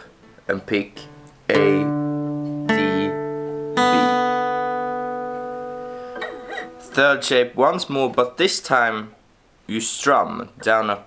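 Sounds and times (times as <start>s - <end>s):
acoustic guitar notes picked: 0.0s - 8.0s.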